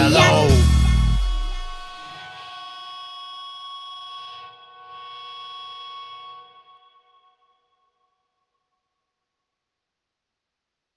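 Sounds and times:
rock guitar chord ringing: 0.0s - 2.0s.

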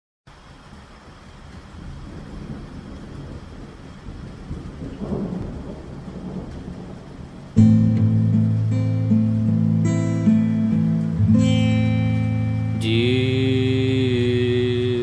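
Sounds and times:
rain: 0.3s - 15.0s
rolling thunder: 1.5s - 8.7s
acoustic guitar chord strummed: 7.6s - 15.0s.

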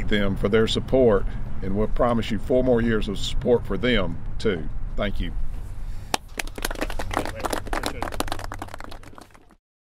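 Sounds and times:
people clapping in applause: 6.1s - 9.6s.

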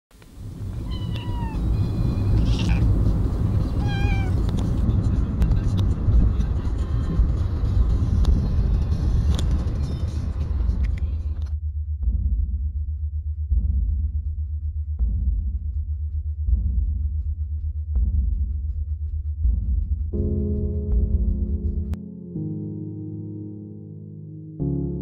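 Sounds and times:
car road and engine rumble: 0.1s - 11.5s
cat meowing: 0.6s - 4.8s.

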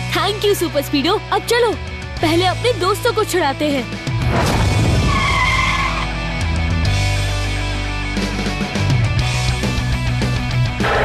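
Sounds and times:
rock music: 0.0s - 11.0s
tyre screech: 5.0s - 6.1s.

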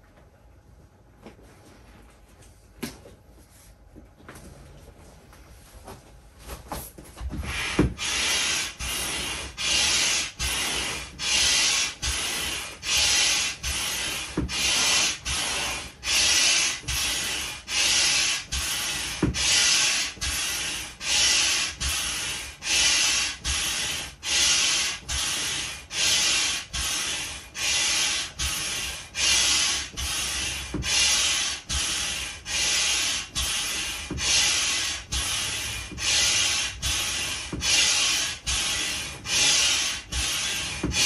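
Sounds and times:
hand air pump hissing: 7.3s - 41.0s.

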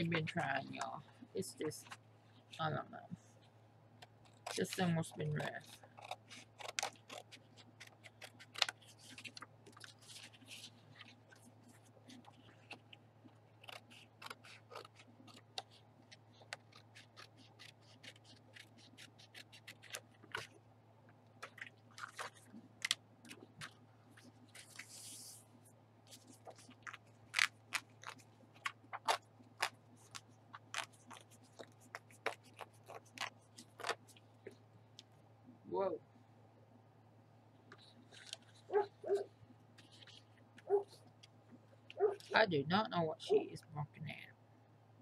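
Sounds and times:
paper rustling: 4.1s - 20.6s, 21.4s - 34.2s, 37.7s - 41.3s
scissors snipping paper: 4.2s - 11.2s, 12.1s - 20.6s, 21.4s - 23.8s, 26.2s - 34.2s.

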